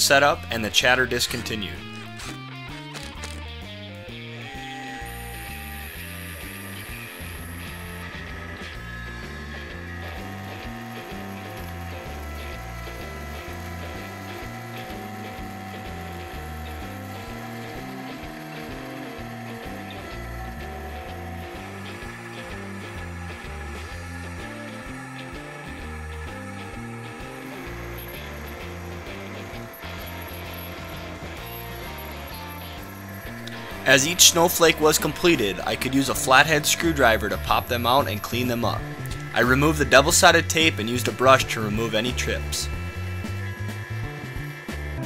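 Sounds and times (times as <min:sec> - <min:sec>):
router machining metal whining: 0:00.0 - 0:02.4, 0:04.4 - 0:45.0
background music with bass line: 0:00.0 - 0:45.0
rapid mechanical ticking: 0:04.4 - 0:45.0.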